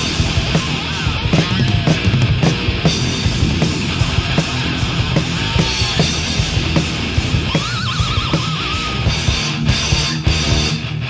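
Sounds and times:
thrash metal band playing: 0.0s - 11.0s.

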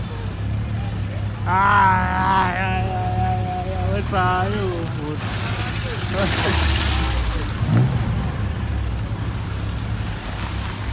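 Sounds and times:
vehicle engine rumbling: 0.0s - 10.9s
person calling out: 1.5s - 4.8s.

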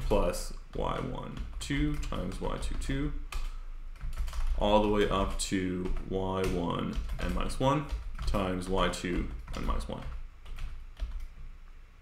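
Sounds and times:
computer keyboard keystrokes: 0.0s - 11.4s.

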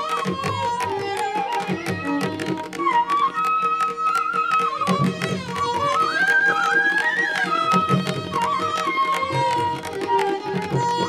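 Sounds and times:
bamboo flute melody: 0.0s - 11.0s
violin: 0.0s - 11.0s.

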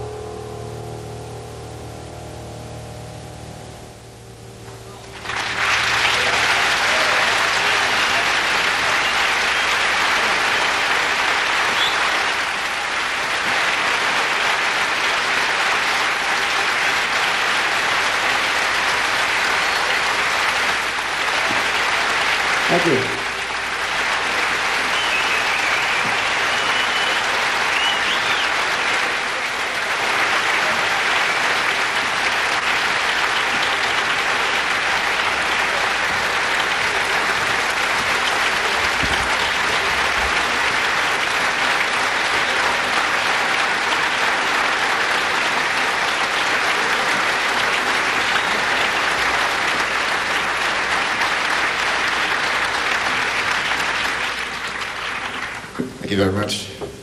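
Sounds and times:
concert audience applauding: 0.0s - 56.7s.

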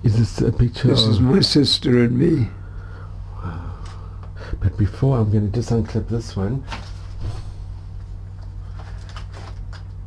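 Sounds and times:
low electrical hum: 0.0s - 10.0s
rustling and unclipping clicks: 8.4s - 10.0s.

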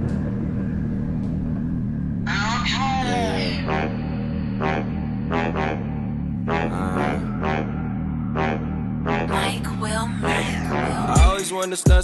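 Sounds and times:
deep rumbling soundtrack drone: 0.0s - 11.3s.

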